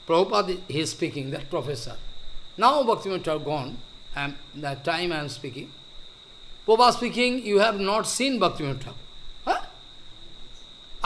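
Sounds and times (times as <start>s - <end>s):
faint high-pitched whine: 0.0s - 11.0s
man saying huh: 9.5s - 9.7s.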